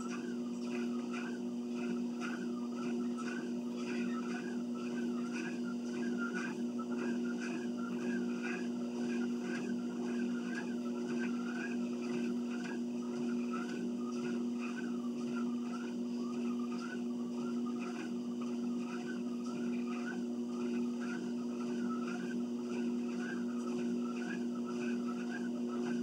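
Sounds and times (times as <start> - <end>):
exercise machine humming and squeaking: 0.0 - 26.0.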